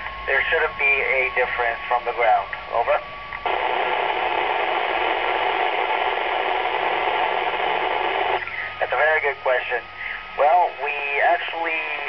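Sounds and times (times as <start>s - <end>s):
radio receiver hiss: 0.0s - 12.0s.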